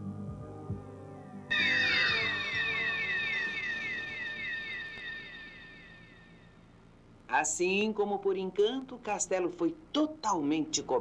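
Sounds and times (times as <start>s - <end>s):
shimmering magic sound effect: 1.5s - 6.5s.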